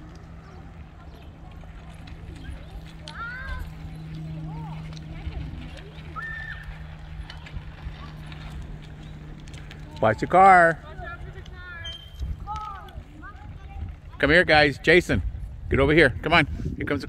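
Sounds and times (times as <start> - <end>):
distant children calling out: 0.0 - 14.4
low hum and rumble: 0.0 - 16.8.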